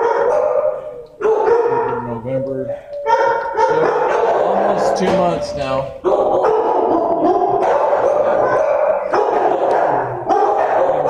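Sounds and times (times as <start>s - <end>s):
dogs barking: 0.0s - 11.0s.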